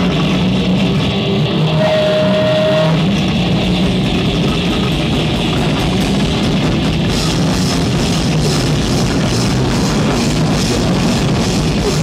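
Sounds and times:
live rock band playing: 0.0 - 12.0
held electric guitar note: 0.6 - 12.0.

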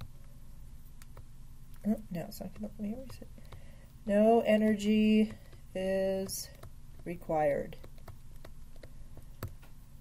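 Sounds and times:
stylus tapping on tablet screen: 0.9 - 1.3, 2.4 - 9.8.

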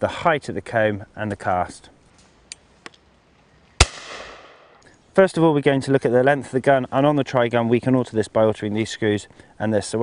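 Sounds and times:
shotgun shot with echo: 3.8 - 4.8.

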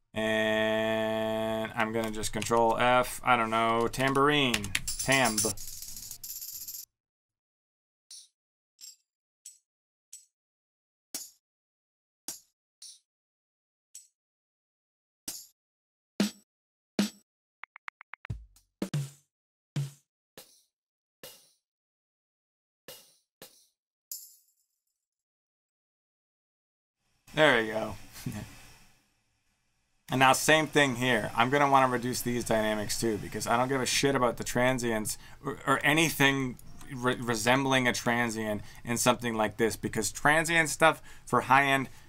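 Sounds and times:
tambourine jingle hits: 4.9 - 6.8, 24.1 - 24.5.

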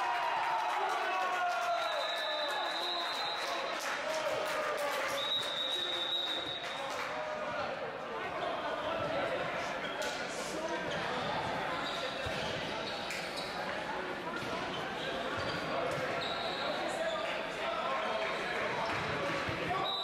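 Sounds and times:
indistinct chatter in a hall: 0.0 - 20.0.

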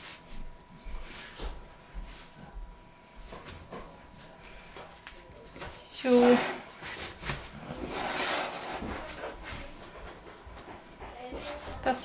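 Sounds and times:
hands brushing bread dough: 0.0 - 2.4.

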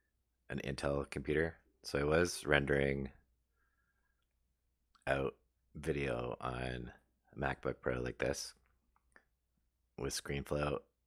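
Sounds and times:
man speaking: 0.5 - 3.2, 5.0 - 8.6, 10.0 - 10.9.

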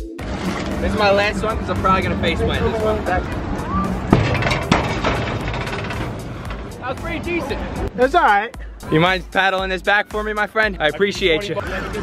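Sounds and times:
diving board banging: 3.6 - 7.3.

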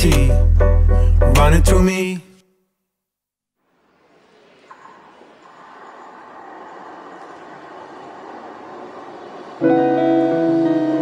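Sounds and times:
steady rushing ambient noise: 3.7 - 11.0.

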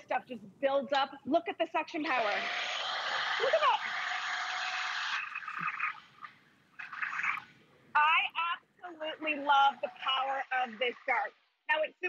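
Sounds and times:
stick vacuum sucking grit: 2.1 - 5.8.

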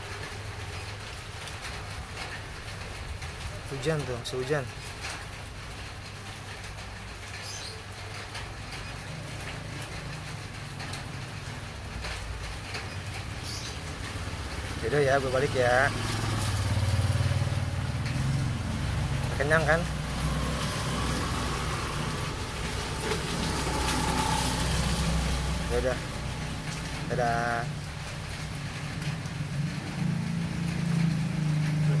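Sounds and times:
vehicle engine humming: 8.3 - 32.0.

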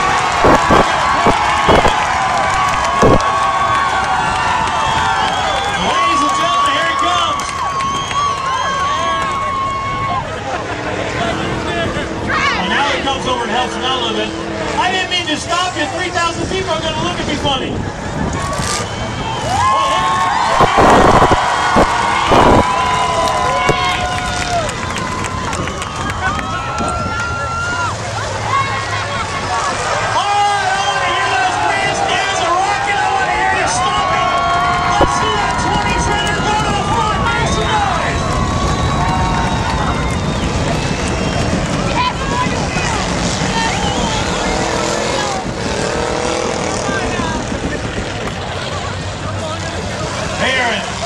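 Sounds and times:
crowd chatter: 0.0 - 51.0
race car engines revving: 0.0 - 51.0.

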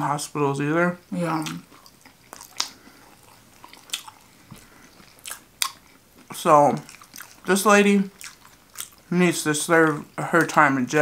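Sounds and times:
person chewing food: 1.4 - 9.1.

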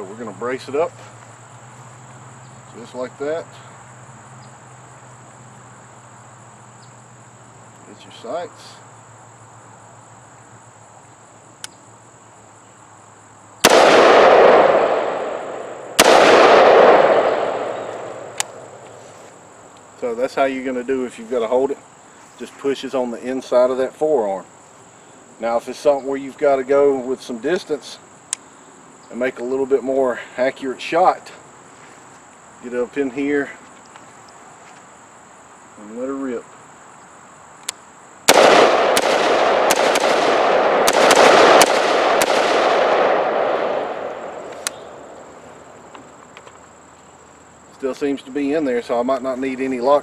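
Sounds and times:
crickets chirping: 0.0 - 50.0
gunshots with echo: 13.6 - 18.8, 38.3 - 45.1.

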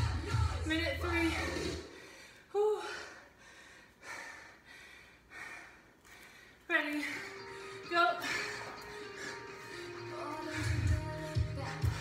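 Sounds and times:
woman gasping: 1.9 - 12.0.

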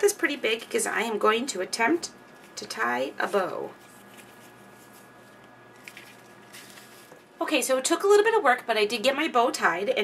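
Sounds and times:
ribbon rustling: 2.2 - 7.4.

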